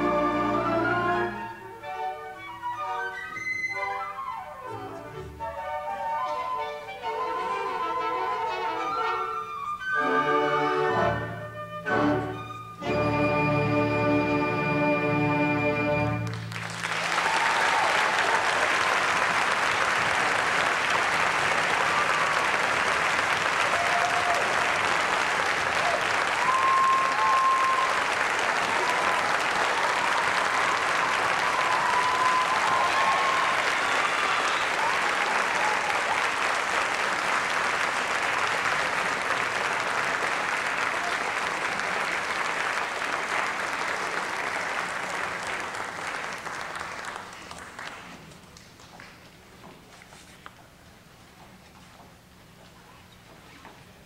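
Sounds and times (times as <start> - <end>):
audience applauding: 16.1 - 49.4
people cheering and whooping: 17.0 - 19.0, 21.7 - 22.8, 23.6 - 36.6.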